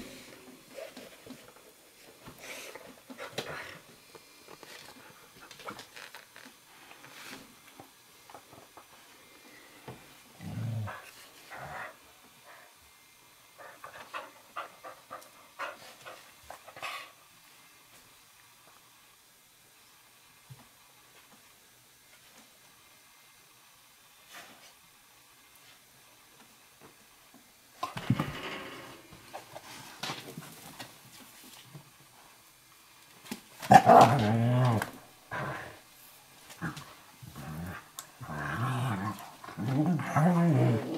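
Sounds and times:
dog growling: 0:10.4 - 0:12.0, 0:33.7 - 0:35.8, 0:36.6 - 0:40.9.

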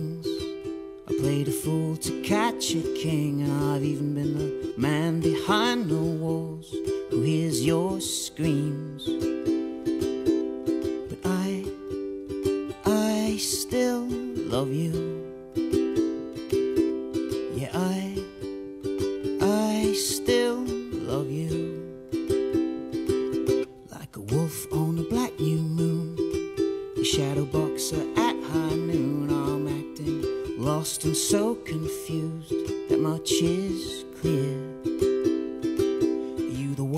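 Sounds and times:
man singing: 0:00.0 - 0:16.6, 0:17.2 - 0:18.6, 0:19.2 - 0:22.1, 0:23.4 - 0:36.9
ukulele strumming: 0:00.0 - 0:36.9.

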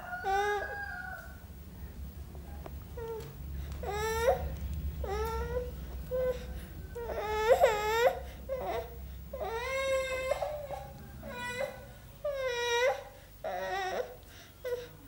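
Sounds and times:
toddler crying and whining: 0:03.0 - 0:15.0.

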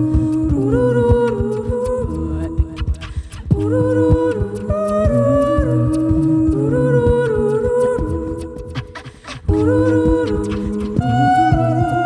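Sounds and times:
hummed harmony vocal loops: 0:00.0 - 0:12.0
percussive beat: 0:00.0 - 0:12.0.

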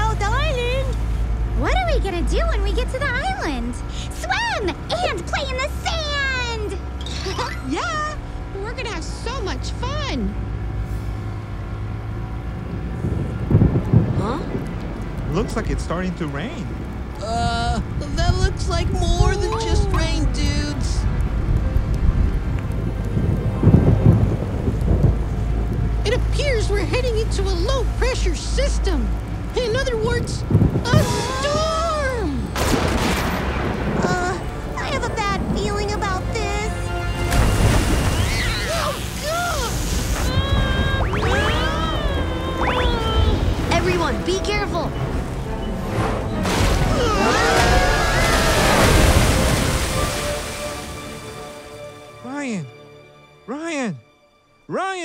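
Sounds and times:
thunder rumble: 0:00.0 - 0:51.7
ship engine rumble: 0:00.0 - 0:52.5
wind: 0:00.0 - 0:53.8
people screaming and yelling: 0:18.9 - 0:20.7, 0:30.9 - 0:32.6, 0:38.0 - 0:44.0, 0:46.7 - 0:50.2
dramatic background music: 0:19.5 - 0:55.0
crashing water wave: 0:36.8 - 0:52.1.

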